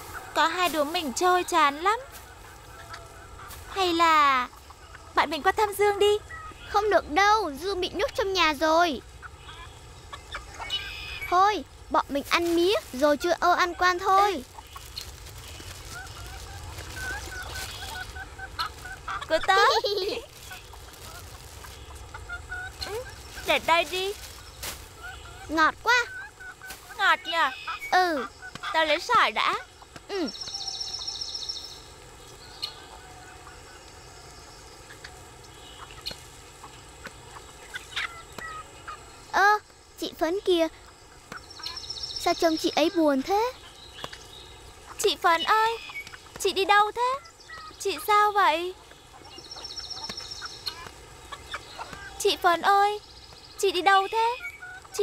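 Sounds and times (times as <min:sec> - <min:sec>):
chickens clucking: 0:00.0 - 0:55.0
bird trilling: 0:09.1 - 0:11.4, 0:12.8 - 0:31.8, 0:40.6 - 0:55.0.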